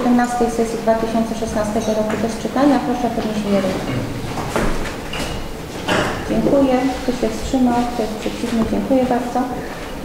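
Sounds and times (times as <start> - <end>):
room noise: 0.0 - 10.0
light shuffling: 1.9 - 10.0
knocks: 3.9 - 6.6.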